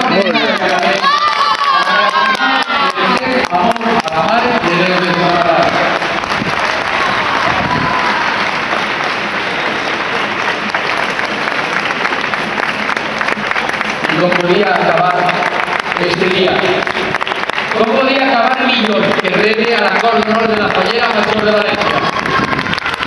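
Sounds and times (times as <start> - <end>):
applause and cheering: 0.0 - 23.0
crowd voices: 0.0 - 23.0.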